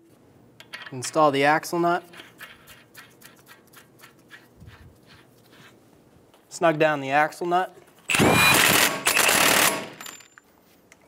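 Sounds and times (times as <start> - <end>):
impact wrench hammering: 8.1 - 10.2.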